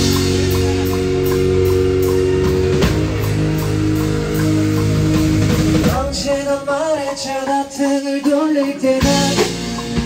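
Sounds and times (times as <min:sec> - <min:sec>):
sustained chords: 0:00.0 - 0:07.5
drum kit beat: 0:00.0 - 0:10.0.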